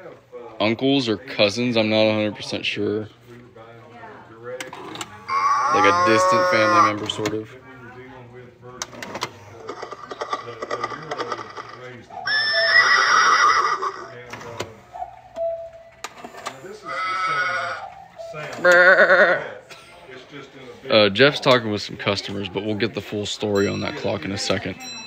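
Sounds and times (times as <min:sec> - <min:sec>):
quiet chatter: 0:00.0 - 0:25.0
horse whinny: 0:05.2 - 0:07.1, 0:12.2 - 0:14.2, 0:16.8 - 0:17.9, 0:18.6 - 0:19.6
clock warbling animal calls: 0:05.3 - 0:07.2, 0:09.9 - 0:14.2, 0:16.8 - 0:19.1.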